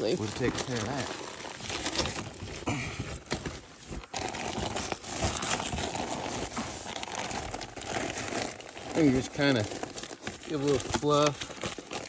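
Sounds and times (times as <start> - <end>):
insulation rustling and crinkling: 0.0 - 12.0.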